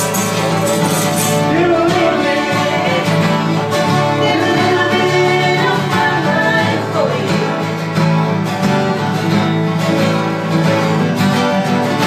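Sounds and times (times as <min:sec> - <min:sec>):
acoustic guitars strummed: 0:00.0 - 0:12.0
voices singing along: 0:01.1 - 0:07.8.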